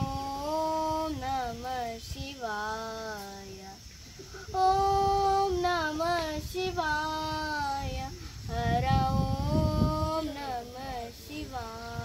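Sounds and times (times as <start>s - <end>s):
girl singing solo: 0.0s - 3.8s, 4.4s - 12.0s.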